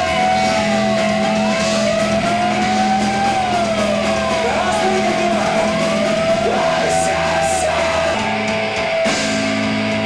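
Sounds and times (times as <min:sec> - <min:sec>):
electric guitar feedback: 0:00.0 - 0:10.0.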